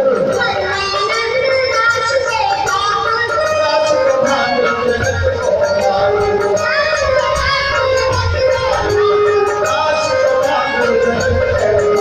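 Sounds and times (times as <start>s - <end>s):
musical accompaniment: 0.0s - 12.0s
person singing through loudspeaker: 0.0s - 12.0s.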